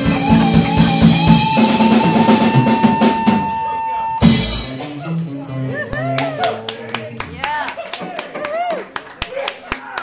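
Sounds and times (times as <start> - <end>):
blues band playing: 0.0 - 8.7
hand claps: 5.9 - 10.0.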